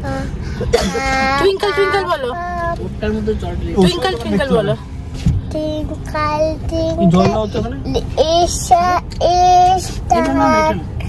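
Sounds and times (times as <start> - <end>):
low steady rumble: 0.0 - 11.0
child singing: 8.1 - 10.8.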